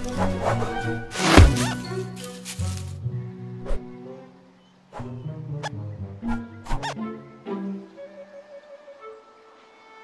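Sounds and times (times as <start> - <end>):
orchestral film score: 0.0 - 10.0.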